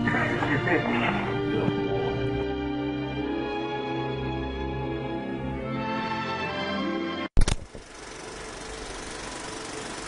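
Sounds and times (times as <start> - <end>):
mechanical whirr with rattle: 7.4 - 10.0.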